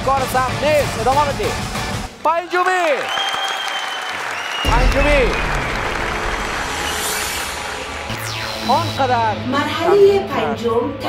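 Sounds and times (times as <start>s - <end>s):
studio audience applauding: 2.2s - 8.7s
whoosh sound effect: 4.7s - 9.4s.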